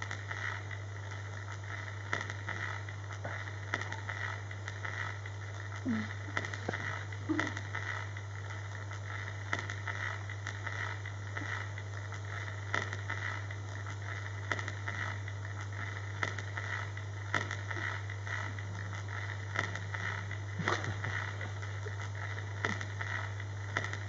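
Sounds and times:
low hum with hiss: 0.0s - 24.0s.

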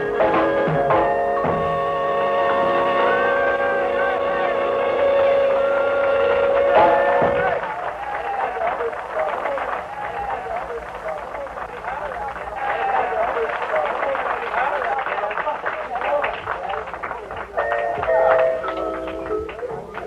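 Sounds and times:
swing jazz band with clarinet: 0.0s - 7.3s
drum stroke: 0.2s - 1.8s
people talking over one another: 2.6s - 20.0s.

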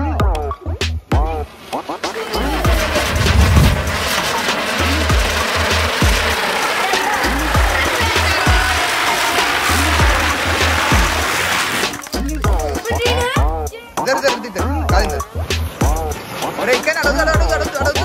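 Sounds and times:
music with bass beat and vocals: 0.0s - 4.2s, 7.2s - 9.0s, 9.6s - 11.3s, 11.9s - 18.0s
firework fizzing hiss: 1.6s - 13.0s.

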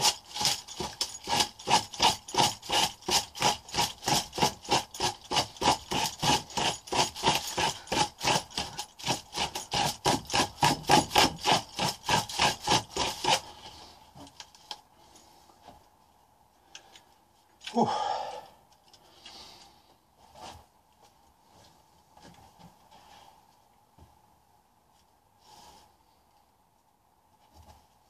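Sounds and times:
tool scraping on paper: 0.0s - 14.3s.

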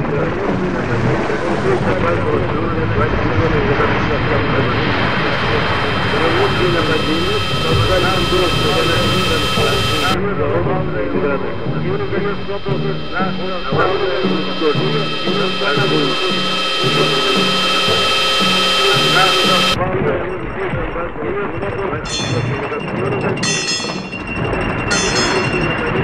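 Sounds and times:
dense layered industrial drone: 0.0s - 19.8s
high whistling tones: 4.7s - 10.2s, 11.0s - 19.8s.

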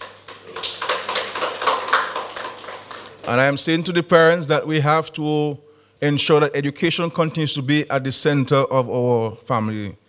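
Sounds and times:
audience applauding: 0.0s - 3.6s.

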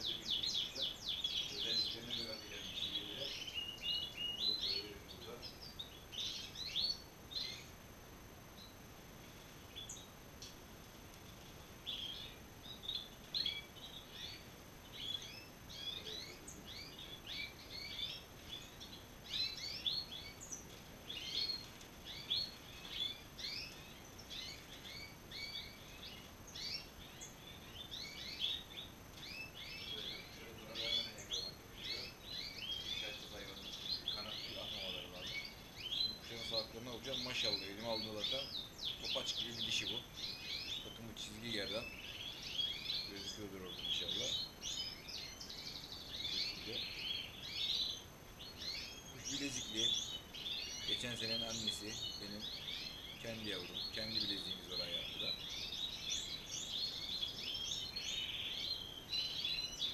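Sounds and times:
finches twittering: 0.0s - 59.9s.

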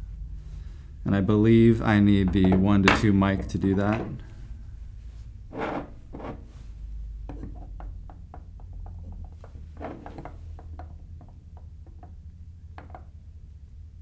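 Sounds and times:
low steady hum: 0.0s - 14.0s
rubbing and shuffling handling sounds: 5.0s - 6.9s.

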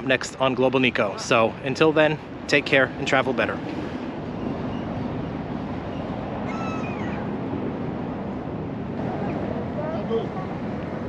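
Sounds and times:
outdoor background noise: 0.0s - 11.0s
falling mewing call: 6.4s - 7.3s.

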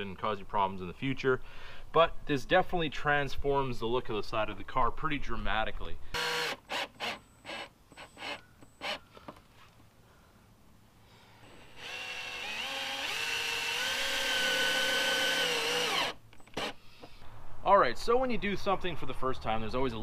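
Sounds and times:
cordless drill driving screw: 6.1s - 9.0s, 11.4s - 16.8s.

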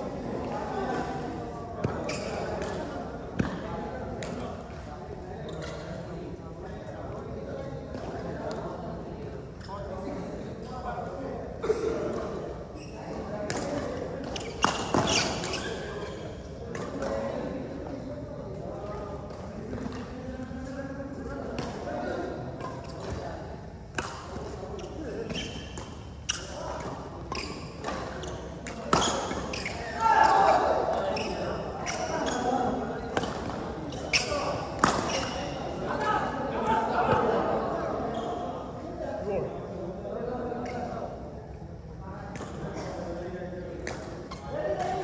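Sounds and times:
voices in echoing hall: 0.0s - 45.0s
rackets hitting shuttlecock: 13.4s - 15.6s, 23.9s - 24.7s, 33.1s - 35.6s.

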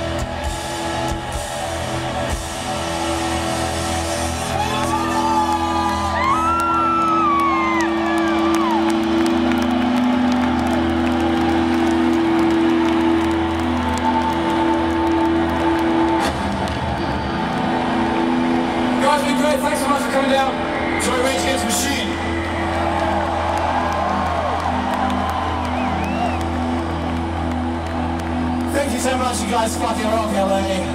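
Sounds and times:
crowd cheering and whooping: 0.0s - 30.9s.

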